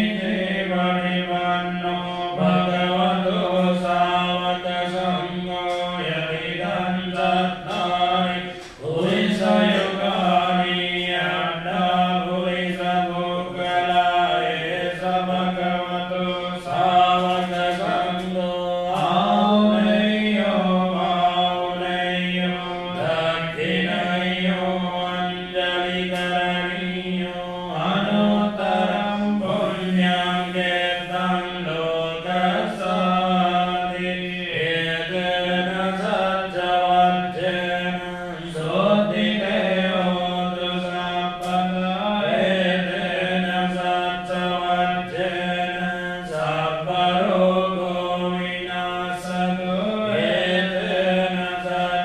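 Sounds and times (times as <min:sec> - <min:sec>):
melodic mantra chanting: 0:00.0 - 0:52.0.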